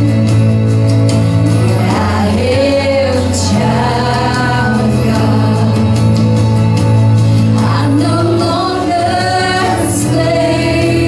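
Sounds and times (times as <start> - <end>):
backing music with held bass note: 0.0 - 11.0
women singing into microphones: 1.4 - 6.5, 7.4 - 11.0.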